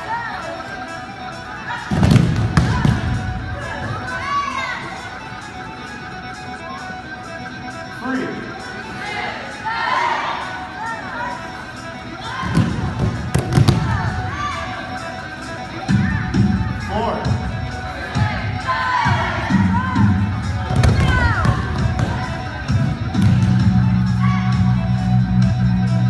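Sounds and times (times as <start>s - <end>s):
background music: 0.0s - 26.0s.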